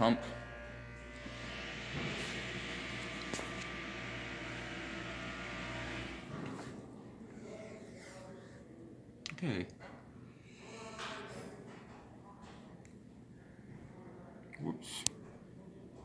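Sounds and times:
elevator pump motor humming: 0:00.0 - 0:06.9.

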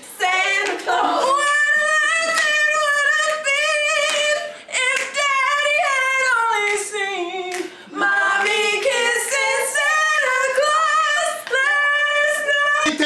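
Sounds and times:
women singing a cappella: 0:00.0 - 0:13.0.

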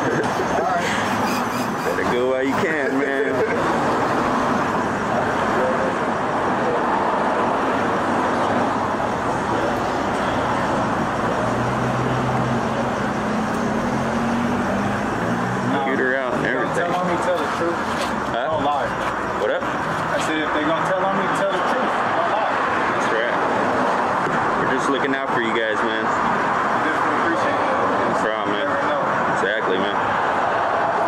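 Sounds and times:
street traffic noise: 0:00.0 - 0:31.0
vehicle engine: 0:00.0 - 0:31.0.

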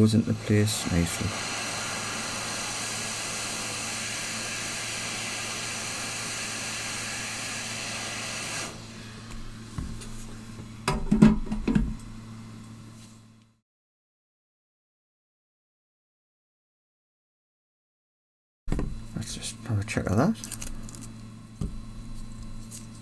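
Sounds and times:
hot air station hissing: 0:00.0 - 0:10.9.

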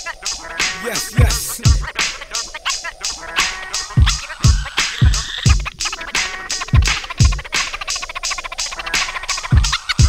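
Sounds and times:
turntable scratching: 0:00.2 - 0:10.0
crisp hi-hat hits: 0:00.3 - 0:08.0
hip hop beat: 0:00.5 - 0:02.5
deep kick drums: 0:01.2 - 0:01.9.

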